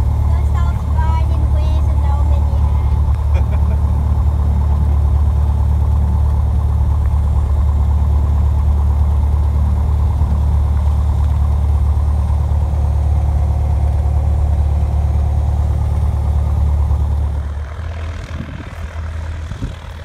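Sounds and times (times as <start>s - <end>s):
propeller aircraft engine droning: 0.0s - 20.0s.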